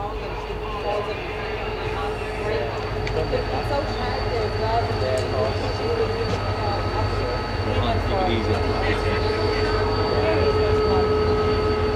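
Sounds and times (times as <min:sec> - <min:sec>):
train rumbling: 0:00.0 - 0:11.9.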